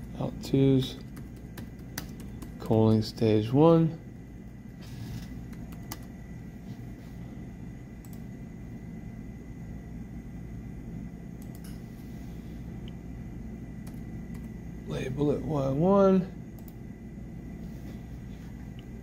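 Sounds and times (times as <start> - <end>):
keyboard and mouse clicks: 1.0 - 2.8, 5.4 - 6.1.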